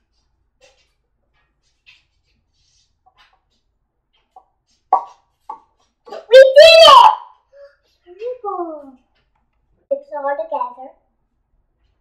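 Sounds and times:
child calling: 6.1s - 7.3s
child's high-pitched exclamation: 6.1s - 7.4s.

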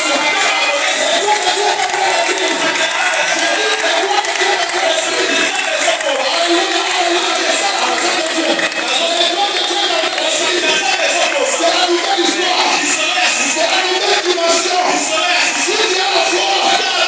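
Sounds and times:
crowd singing and cheering: 0.0s - 17.0s
music: 0.0s - 17.0s.

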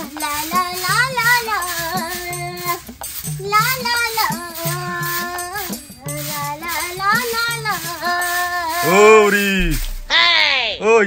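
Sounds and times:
music: 0.0s - 10.2s.

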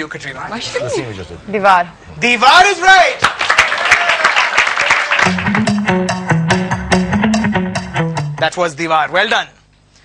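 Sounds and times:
audience applauding: 3.2s - 5.9s.

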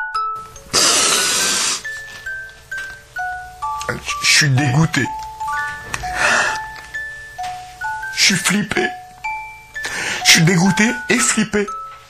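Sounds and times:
glockenspiel-like chiming tune: 0.0s - 0.8s, 1.5s - 12.0s.

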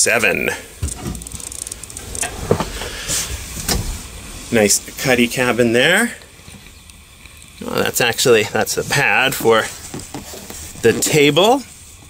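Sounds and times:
camera handling rustling: 0.8s - 2.8s.

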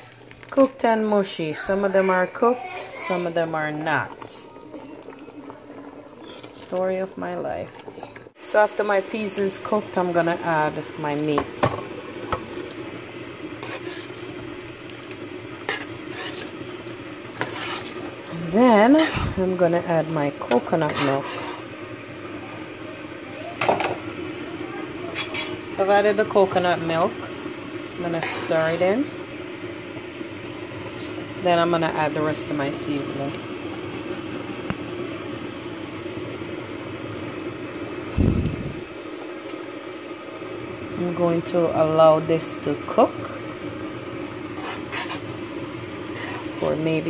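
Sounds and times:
low mechanical hum: 0.0s - 47.0s
liquid pouring into pot hiss: 2.0s - 46.6s
scrape against metal pot: 13.6s - 14.2s, 15.7s - 16.5s, 17.4s - 18.1s, 20.8s - 21.7s, 25.2s - 25.6s, 44.5s - 45.3s, 46.1s - 46.6s.

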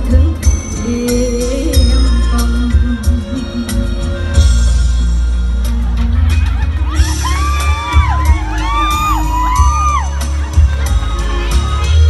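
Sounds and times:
instrumental backing track with heavy bass: 0.0s - 12.0s
audience whooping and cheering: 5.6s - 12.0s.

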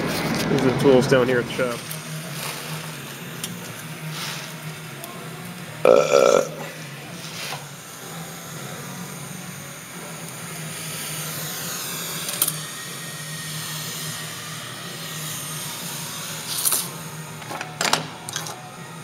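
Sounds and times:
steady low hum: 0.0s - 17.4s.

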